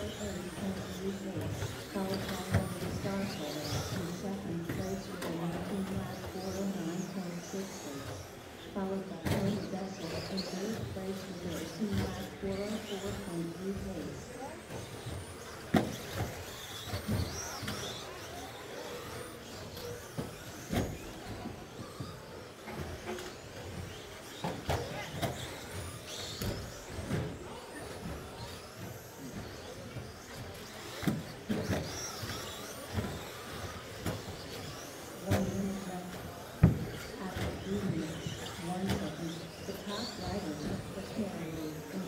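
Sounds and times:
radio-controlled trucks running: 0.0s - 42.0s.

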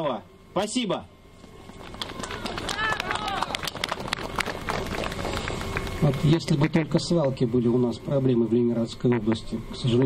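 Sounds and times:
crowd applauding: 1.6s - 6.3s
voices calling out: 1.8s - 5.4s.

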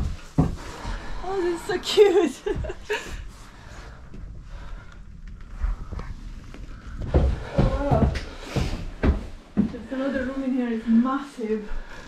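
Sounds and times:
soft footsteps: 0.0s - 12.0s.

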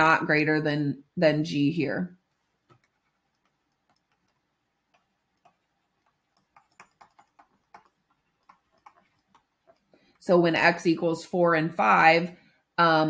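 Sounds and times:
stylus tapping on screen: 2.6s - 10.3s.

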